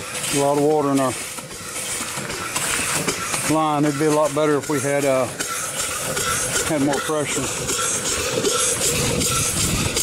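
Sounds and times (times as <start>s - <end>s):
steam engine running slowly: 0.0s - 10.0s
steam hissing: 0.0s - 10.0s.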